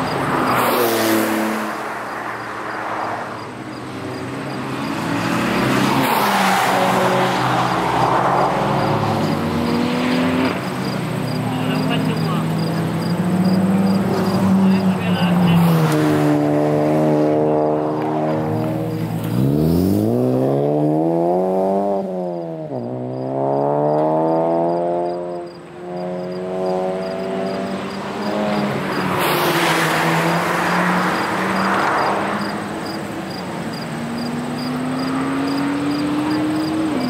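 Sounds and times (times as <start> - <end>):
rushing noise of passing car: 0.0 - 37.0.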